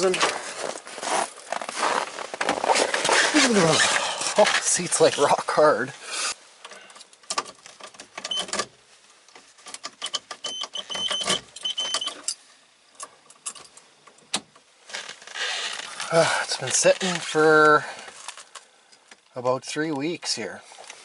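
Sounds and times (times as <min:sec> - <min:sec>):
clicks and rustles of handling: 0:18.0 - 0:19.3.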